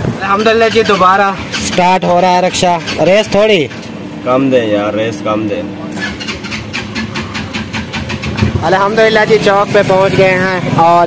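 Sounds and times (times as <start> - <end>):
auto-rickshaw engine running: 0.0 - 11.0.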